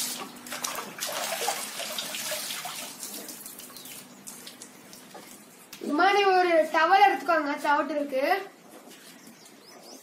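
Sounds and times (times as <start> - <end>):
water splashing in a plastic tub: 0.0 - 5.4.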